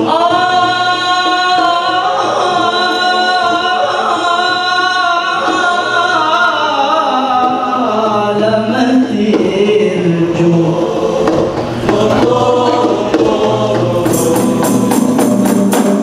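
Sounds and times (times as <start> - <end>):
men singing melodic chant: 0.0 - 16.0.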